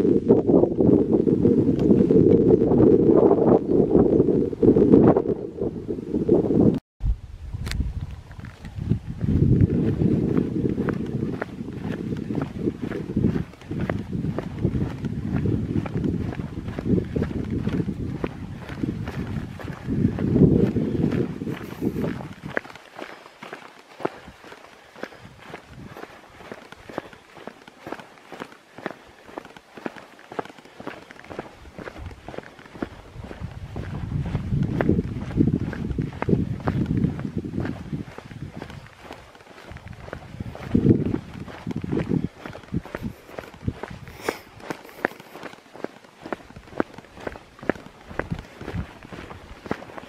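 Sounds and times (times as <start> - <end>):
footsteps on rock: 8.0 - 50.0.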